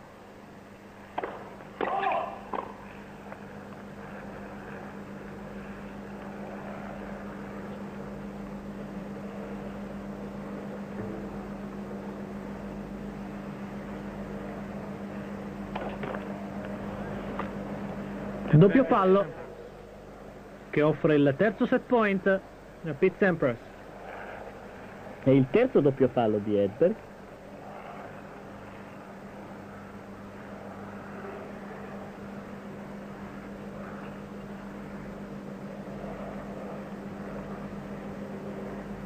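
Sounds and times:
helicopter engine and rotor hum: 0.0 - 39.0.

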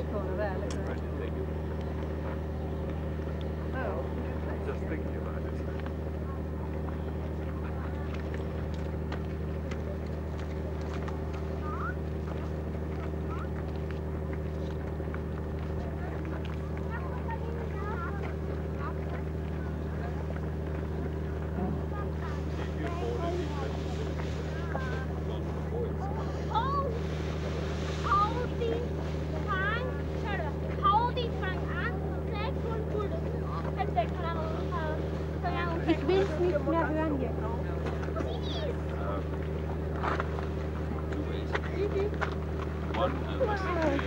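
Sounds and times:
people's voices: 0.0 - 44.0
steady low machine hum: 0.0 - 44.0.

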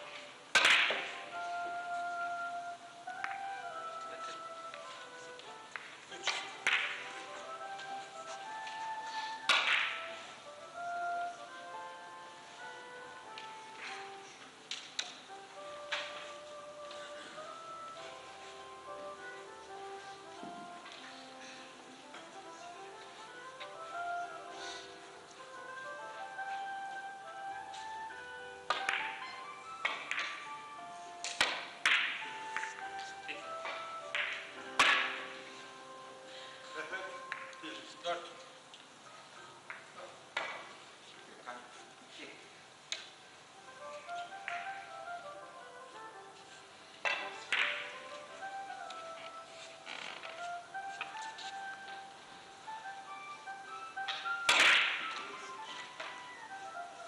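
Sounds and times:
soft music: 0.0 - 57.0
billiard balls clicking: 28.7 - 29.2, 29.8 - 30.5, 33.7 - 35.2, 47.0 - 48.2.

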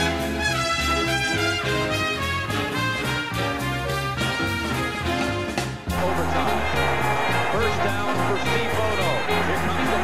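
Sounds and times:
brassy big band music: 0.0 - 10.0.

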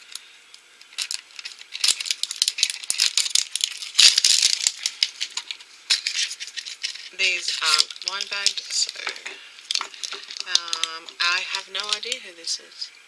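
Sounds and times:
plastic toy capsule crinkling: 0.0 - 12.4
rapid plastic clicks: 0.8 - 7.1.

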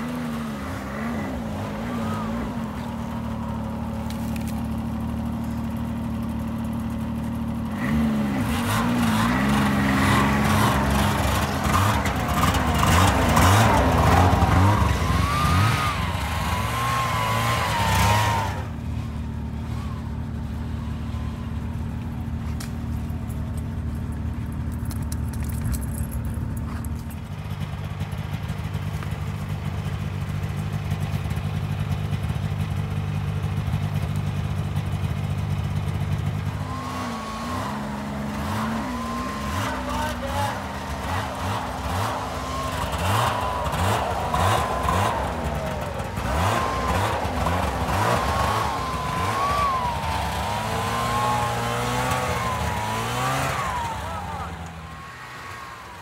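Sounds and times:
snowmobile engines revving: 0.0 - 27.3, 35.6 - 56.0.

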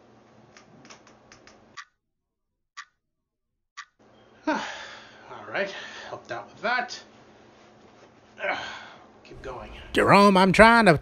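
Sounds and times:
faint room noise: 4.0 - 11.0.

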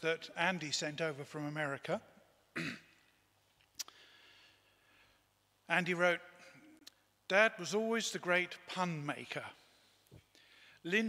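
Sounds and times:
man coughing: 2.5 - 3.0.

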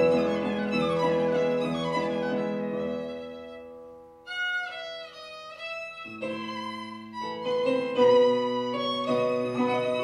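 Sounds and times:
slow bowed violin melody: 0.0 - 10.0.

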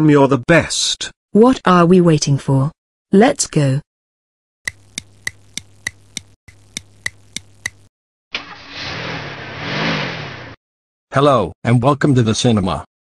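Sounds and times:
clock ticking: 4.7 - 7.9.

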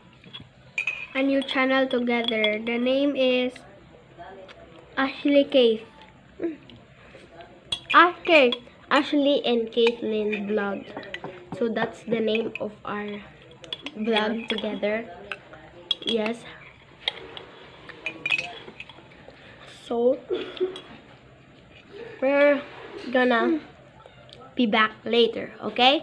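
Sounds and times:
spoon clinking against a dish: 0.2 - 2.8, 7.7 - 9.1, 9.7 - 19.2, 20.5 - 21.0.

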